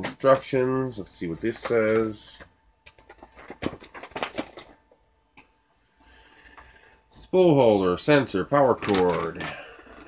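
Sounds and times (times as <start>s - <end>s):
paper rustling and crackling: 1.4s - 4.9s, 8.7s - 9.6s.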